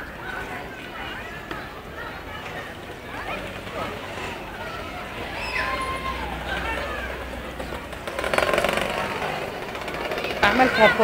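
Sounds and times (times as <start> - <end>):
street background noise: 0.0 - 11.0
fast mechanical rattle: 8.0 - 10.7.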